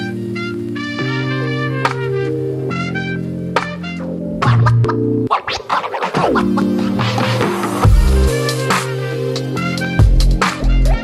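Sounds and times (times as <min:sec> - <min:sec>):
electronic music: 0:00.0 - 0:11.0
dj scratch effects: 0:04.0 - 0:09.0.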